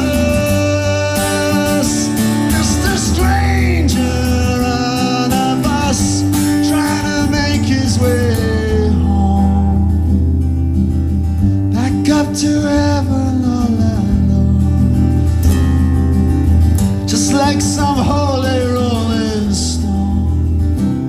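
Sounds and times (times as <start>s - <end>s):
man singing: 0.0s - 10.3s, 11.6s - 15.6s, 17.0s - 21.0s
acoustic guitar: 0.0s - 21.0s.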